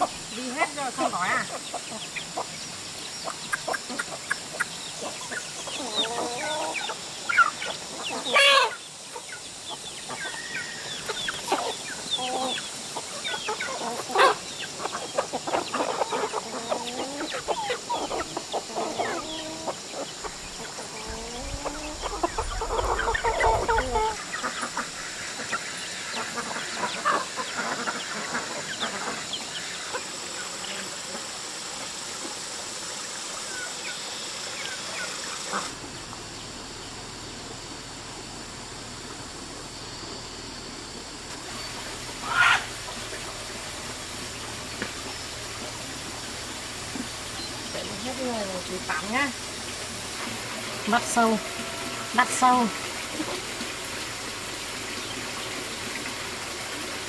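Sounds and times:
chickens clucking: 0.0s - 37.8s, 40.9s - 57.0s.

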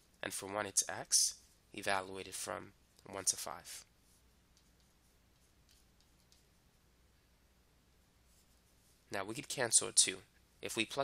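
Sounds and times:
stylus scratching on drawing tablet: 3.3s - 6.9s, 8.2s - 9.1s.

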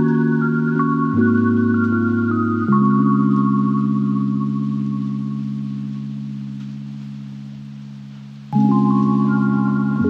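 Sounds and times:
sustained soft electronic chord: 0.0s - 10.0s.

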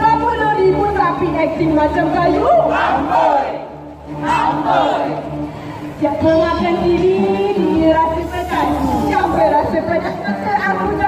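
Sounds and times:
group of people talking: 0.0s - 11.0s.

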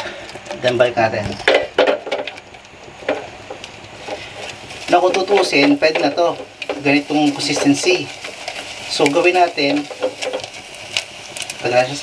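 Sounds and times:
soft sizzle from pan: 0.0s - 12.0s.

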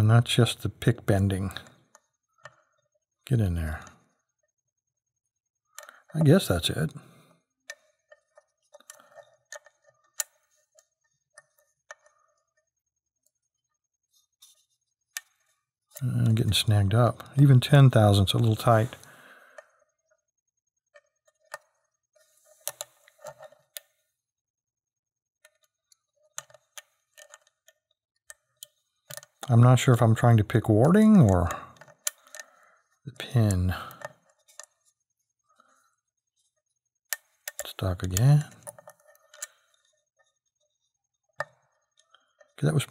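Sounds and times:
lock pick clicking and scraping: 7.7s - 12.2s, 22.5s - 23.9s, 25.4s - 29.5s, 30.9s - 32.6s, 33.4s - 34.8s, 37.1s - 39.9s.

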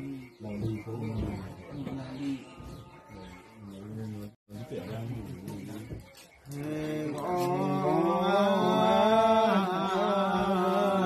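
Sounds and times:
man chanting held notes: 0.0s - 11.0s.

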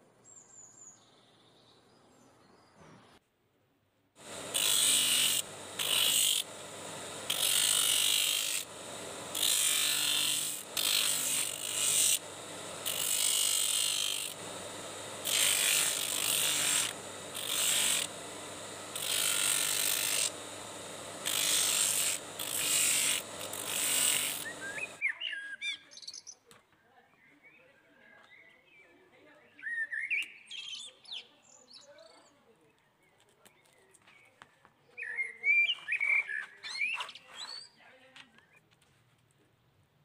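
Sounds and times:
electric motor humming: 4.2s - 25.0s
leather grinding on abrasive wheel: 4.2s - 25.0s.

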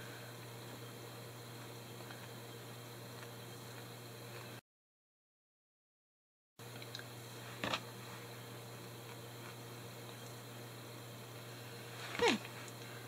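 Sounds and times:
woman speaking: 12.1s - 12.4s.

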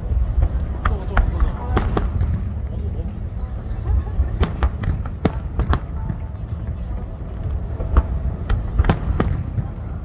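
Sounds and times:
fireworks booming: 0.0s - 10.0s
sharp fireworks cracks: 0.0s - 10.0s.

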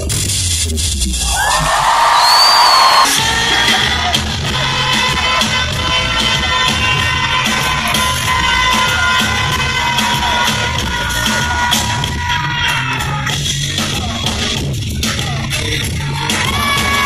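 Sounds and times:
live concert music: 0.0s - 17.0s
crowd cheering: 1.2s - 3.8s.

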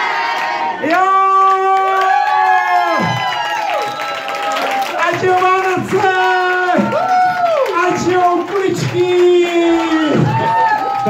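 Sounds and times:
crowd cheering and clapping: 0.0s - 11.0s.

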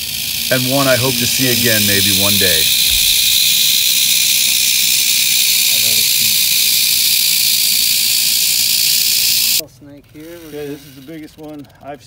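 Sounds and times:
rattlesnake rattling: 0.0s - 12.0s.

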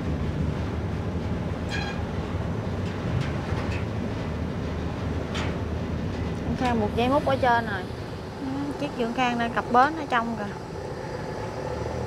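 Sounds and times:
diesel engine drone: 6.7s - 12.0s.

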